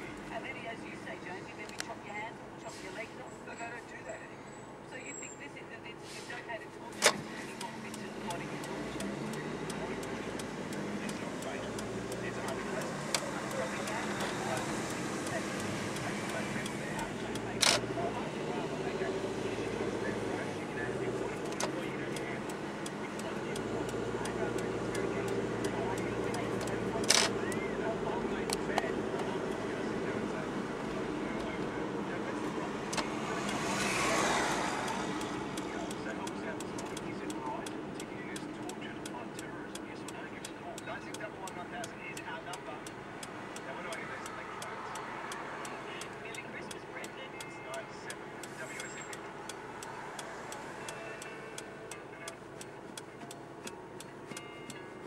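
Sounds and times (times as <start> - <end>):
car engine and road noise: 0.0 - 55.0
sharp clicks: 21.4 - 27.6.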